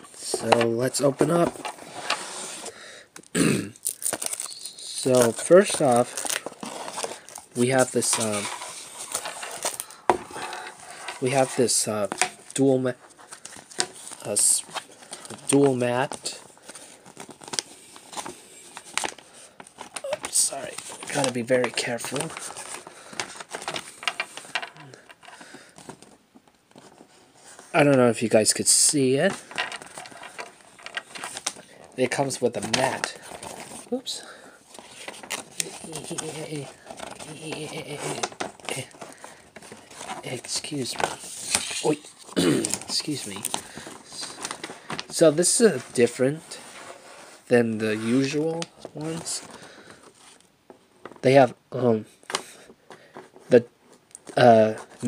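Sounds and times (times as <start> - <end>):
packaging rustling and tapping: 0.1 - 2.2, 5.1 - 27.1, 29.3 - 34.0, 34.7 - 45.2
man speaking indistinctly: 0.2 - 1.5, 20.0 - 22.4, 32.0 - 33.2, 35.6 - 38.9, 41.8 - 43.5, 47.5 - 49.5.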